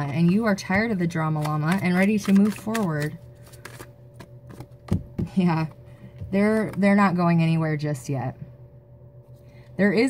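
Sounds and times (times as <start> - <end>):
cards being shuffled: 0.1 - 5.3.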